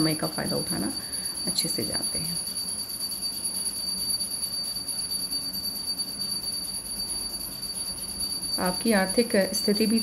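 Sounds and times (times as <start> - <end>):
high-pitched whine: 0.0 - 10.0.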